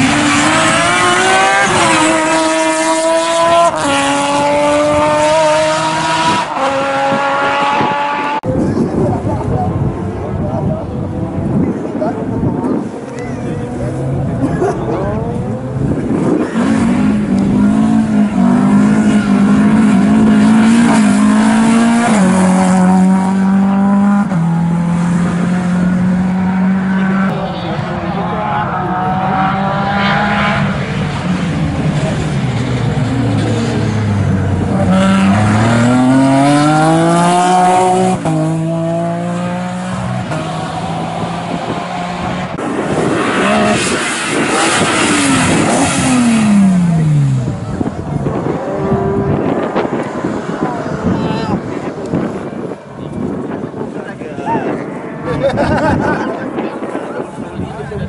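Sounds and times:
passing rally car engine: 0.0 - 58.0
rally car engine revving: 0.0 - 58.0.

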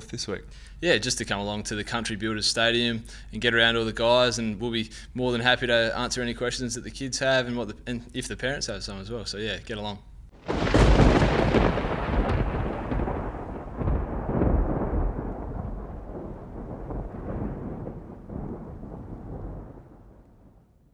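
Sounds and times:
thunder rumbling: 10.4 - 20.9
thunderclap boom: 10.4 - 20.9.

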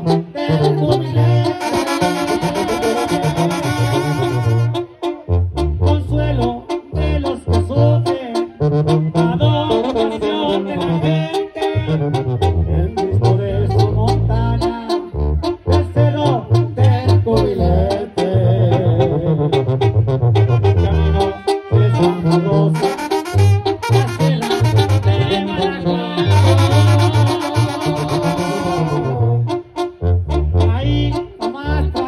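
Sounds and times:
sousaphone bass line: 0.0 - 32.0
trumpets and trombones: 0.0 - 32.0.

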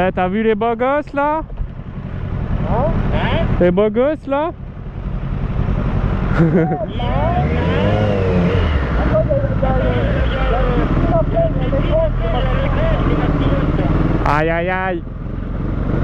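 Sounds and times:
motorcycle engines pulling away: 1.1 - 16.0.

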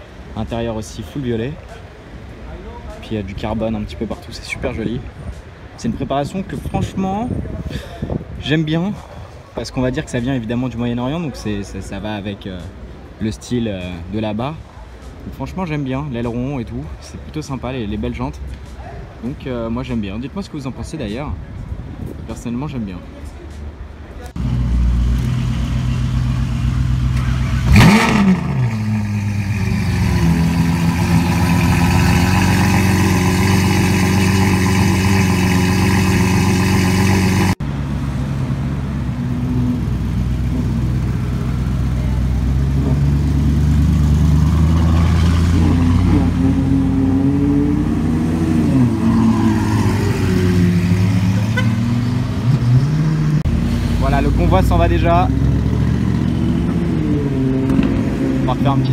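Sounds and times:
car pulling away: 24.3 - 58.9
car engine revving and idling: 24.4 - 58.9.

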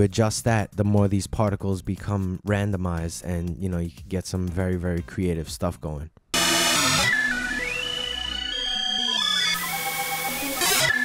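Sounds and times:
synthesizer notes stepping in pitch: 6.4 - 11.0.

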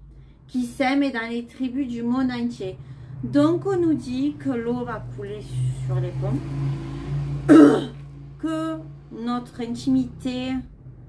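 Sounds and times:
woman clearing her throat: 7.5 - 8.0.

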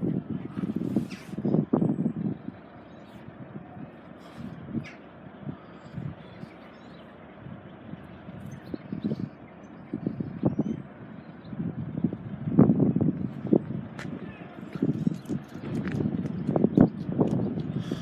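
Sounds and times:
outdoor background hum: 0.0 - 18.0.

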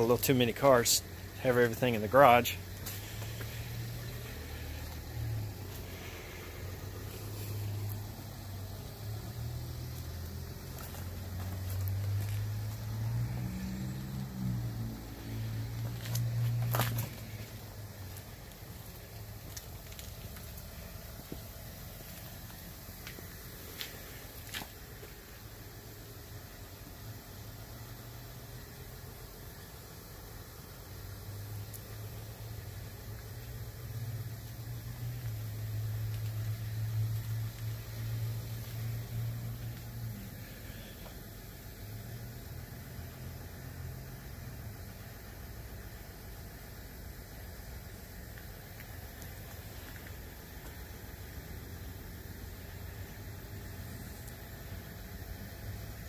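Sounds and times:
faint steady hiss: 0.0 - 56.0
low engine hum: 0.0 - 56.0.

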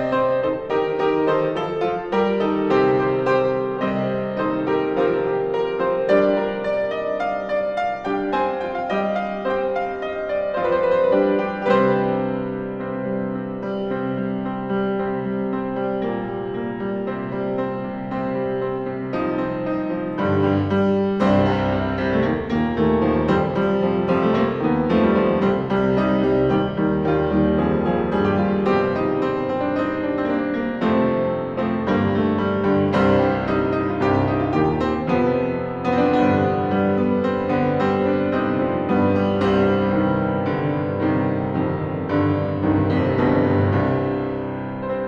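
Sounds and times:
solo piano chords: 0.0 - 45.0.

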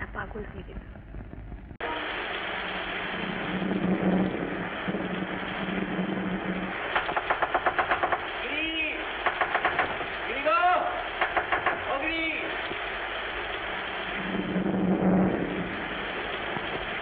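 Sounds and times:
film soundtrack hiss: 0.0 - 17.0.

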